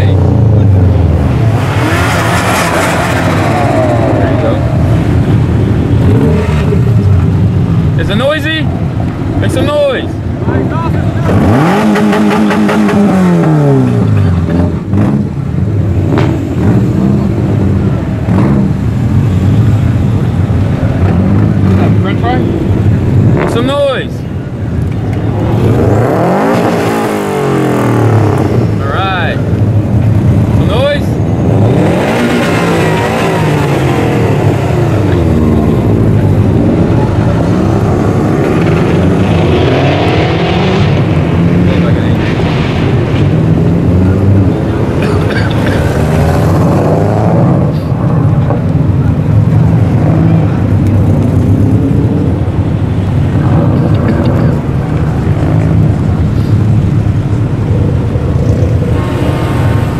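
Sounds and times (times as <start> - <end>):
car engines revving passing slowly: 0.0 - 59.9.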